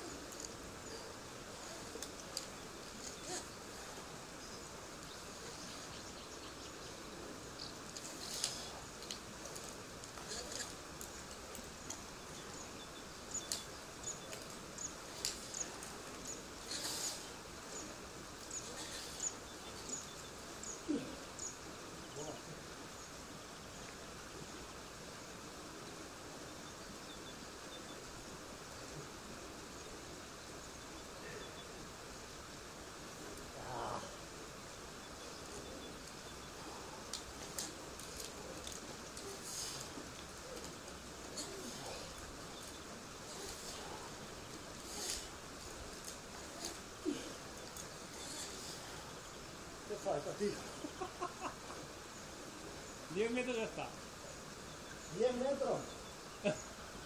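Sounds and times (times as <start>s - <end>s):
outdoor background noise: 0.0s - 57.0s
faint voices: 7.0s - 23.0s, 33.1s - 51.0s
light clicks and rustles: 7.6s - 12.6s, 13.3s - 17.8s, 37.0s - 49.2s.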